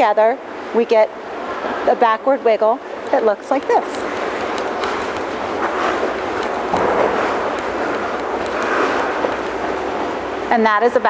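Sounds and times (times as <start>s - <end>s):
skate blades scraping on ice: 3.8s - 9.8s.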